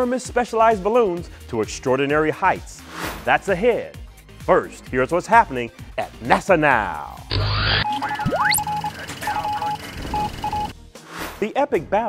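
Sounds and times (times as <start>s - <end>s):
short electronic beeps: 7.3s - 10.7s.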